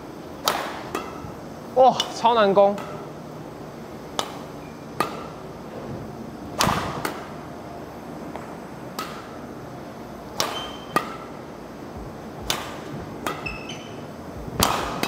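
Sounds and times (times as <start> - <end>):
racket hitting shuttlecock: 0.4 - 1.4, 4.1 - 5.4, 6.6 - 7.4, 8.9 - 9.4, 10.3 - 11.4, 12.4 - 13.9, 14.5 - 15.0.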